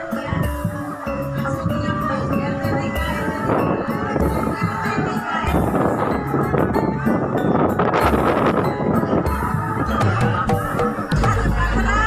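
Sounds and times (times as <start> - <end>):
music with held tones: 0.0 - 12.0
slow low beat: 7.9 - 12.0.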